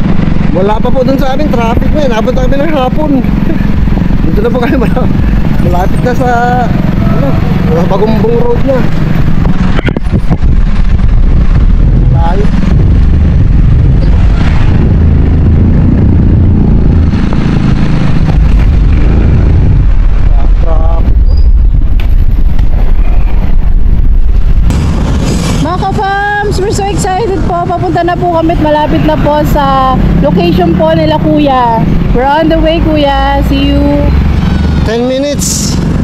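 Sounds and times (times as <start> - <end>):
motorcycle engine running: 0.0 - 36.0
surrounding traffic: 0.0 - 36.0
wind rumble on microphone: 0.0 - 36.0.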